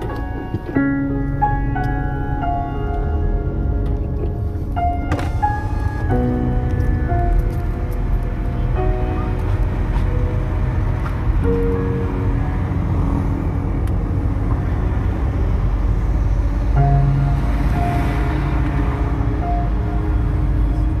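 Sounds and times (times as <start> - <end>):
music with held notes: 0.0 - 14.6
car driving rumble: 0.0 - 21.0.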